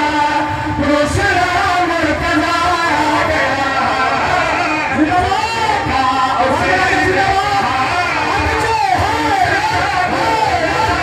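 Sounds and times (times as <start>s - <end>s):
devotional music over loudspeakers: 0.0s - 11.0s.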